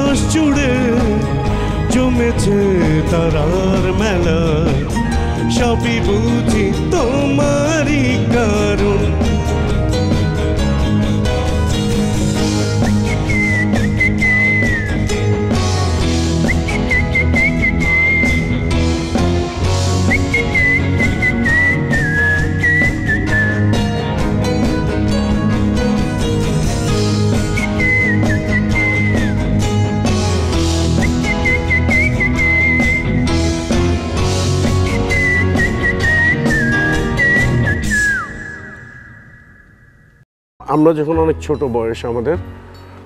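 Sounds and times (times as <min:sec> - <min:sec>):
rock band playing live: 0:00.0 - 0:38.2
bass guitar: 0:00.0 - 0:38.3
sliding lead guitar melody: 0:00.0 - 0:38.5
guitars: 0:00.0 - 0:38.7
drums: 0:00.0 - 0:38.8.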